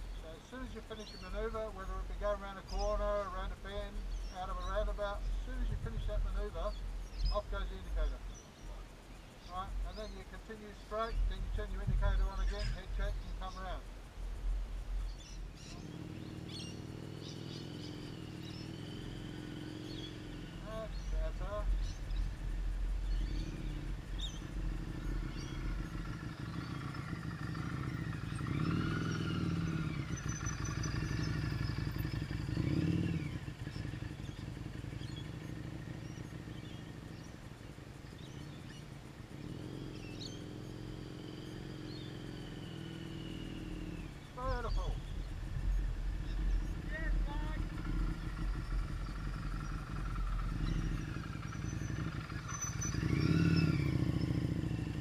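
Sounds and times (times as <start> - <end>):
motorcycle engine passing: 0.0 - 55.0.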